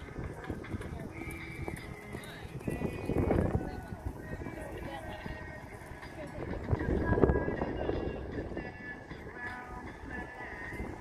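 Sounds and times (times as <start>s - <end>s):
background music: 0.0s - 11.0s
voices: 0.0s - 11.0s.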